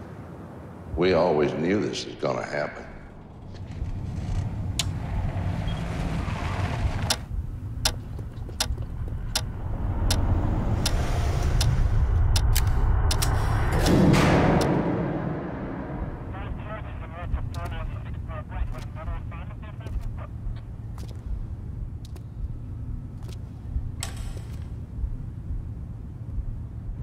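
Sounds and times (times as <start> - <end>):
low rumbling drone: 2.7 - 27.0
loud whoosh: 9.6 - 17.0.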